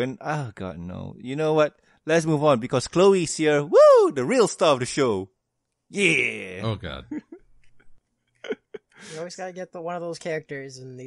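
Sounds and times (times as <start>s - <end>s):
person chuckling: 7.1s - 9.1s.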